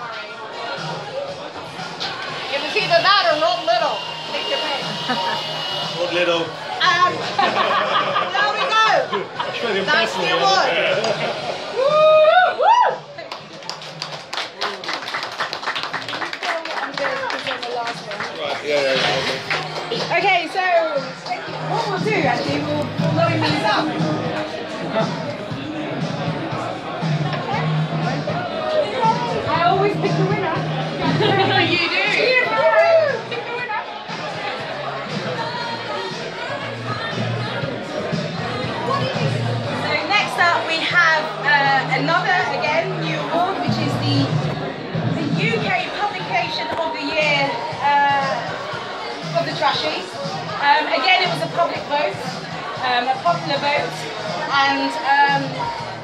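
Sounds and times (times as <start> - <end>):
people chatting in a bar: 0.0 - 56.0.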